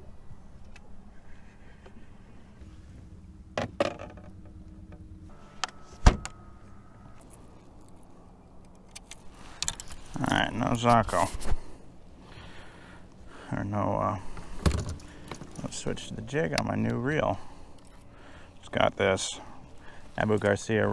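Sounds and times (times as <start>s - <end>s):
low steady hum: 0.0s - 20.9s.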